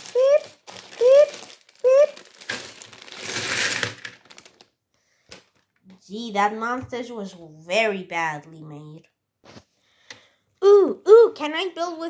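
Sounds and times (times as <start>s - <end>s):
plastic bricks clattering: 2.2s - 4.7s.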